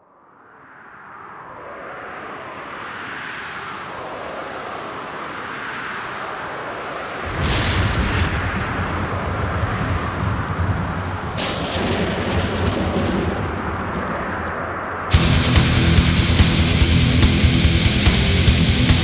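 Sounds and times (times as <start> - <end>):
noisy swell: 14.6 - 19.0
metal band playing: 15.1 - 19.0
cymbals crashing: 15.2 - 19.0.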